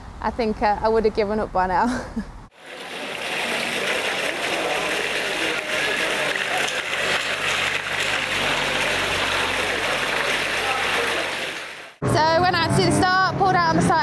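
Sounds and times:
heavy rain on tarmac: 2.5 - 12.0.

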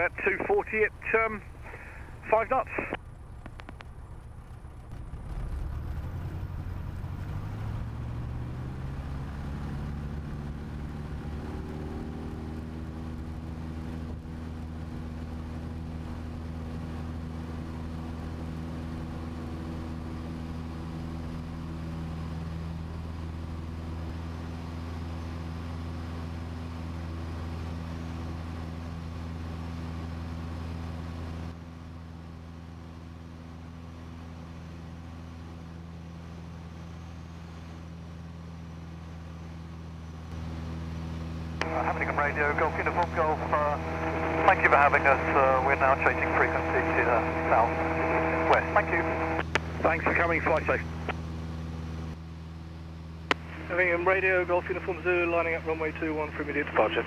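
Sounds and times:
aircraft engine at full power: 0.0 - 57.0.

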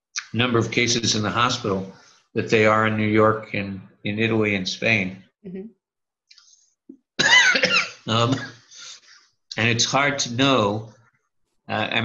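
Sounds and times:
man coughing: 7.2 - 9.0.

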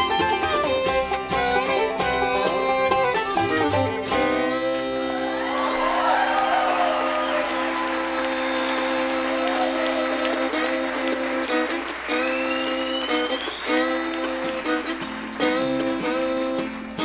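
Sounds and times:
bluegrass band playing: 0.0 - 17.0
audience applause: 5.0 - 17.0.

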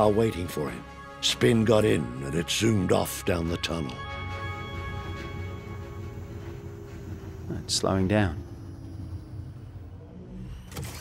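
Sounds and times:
low motor hum: 4.6 - 11.0.

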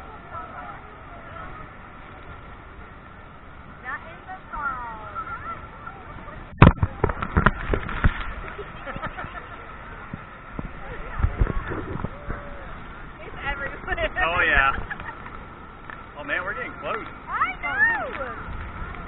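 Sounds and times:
muffled rush of waterfall: 0.0 - 19.0.

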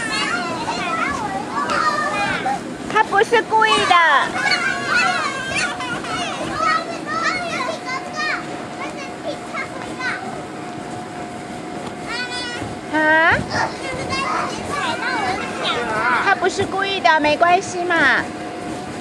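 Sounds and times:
children shrieking and calling: 0.0 - 2.6, 3.8 - 7.3.

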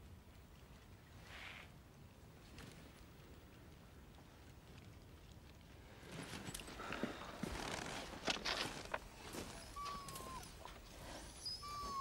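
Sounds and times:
crunching and rustling in snow: 6.0 - 10.2
dog whining: 9.5 - 10.7, 11.3 - 12.0.

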